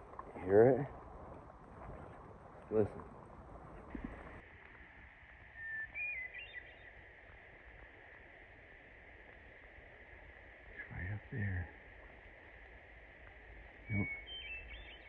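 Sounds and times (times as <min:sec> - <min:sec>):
songbird phrase: 0:05.6 - 0:06.9, 0:10.7 - 0:11.8, 0:13.7 - 0:15.0.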